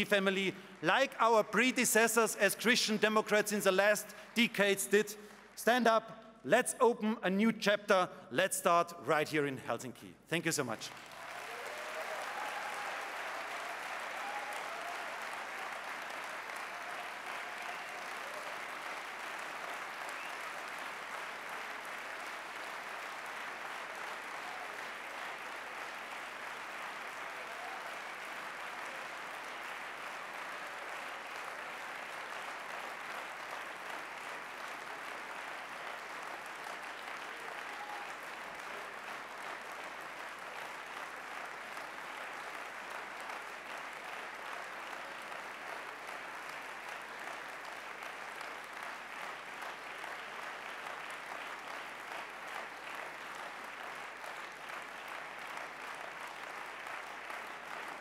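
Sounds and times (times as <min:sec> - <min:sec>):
audience applause: 0:00.0 - 0:06.0, 0:10.5 - 0:58.0.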